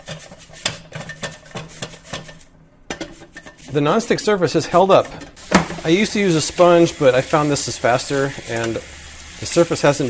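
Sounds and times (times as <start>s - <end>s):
brush scrubbing metal plates: 0.0s - 10.0s.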